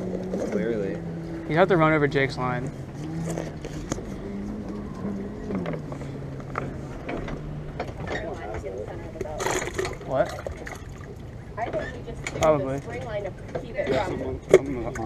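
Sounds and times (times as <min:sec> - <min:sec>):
motorboat engine running: 0:00.0 - 0:15.0.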